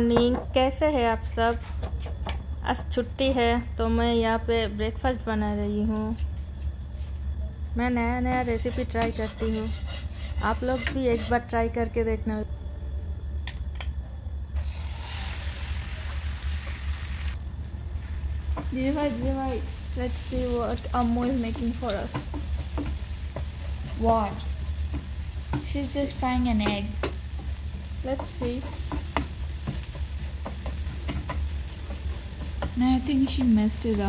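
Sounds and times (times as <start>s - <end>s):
steady low hum: 0.0s - 34.0s
spatula scraping frying pan: 8.5s - 11.5s, 19.7s - 34.0s
egg sizzling in oil: 14.6s - 34.0s.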